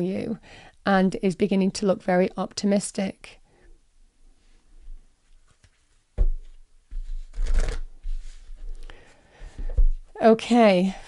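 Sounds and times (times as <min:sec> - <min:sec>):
cards rustling: 0:07.2 - 0:08.4.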